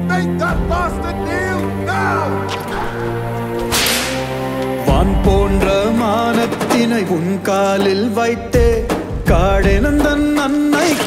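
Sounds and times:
whip lash swish: 0:03.7 - 0:04.3.

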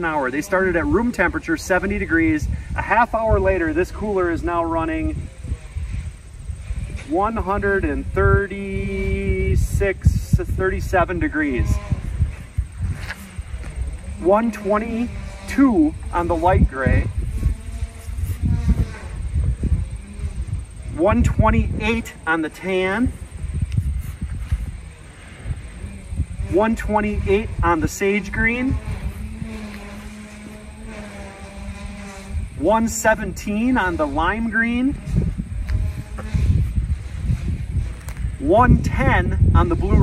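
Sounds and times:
steady motor engine drone: 0:00.0 - 0:40.0
wind rumbling on microphone: 0:00.0 - 0:40.0.

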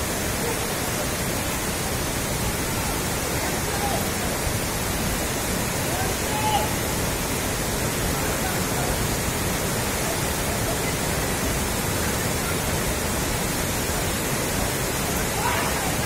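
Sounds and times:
floodwater rushing: 0:00.0 - 0:16.0.

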